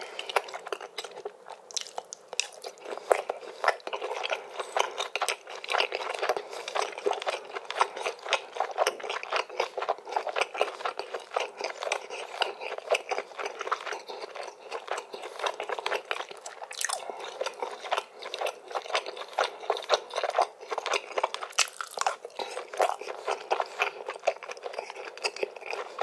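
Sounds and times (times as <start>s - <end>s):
mouth chewing food: 0.0s - 26.0s.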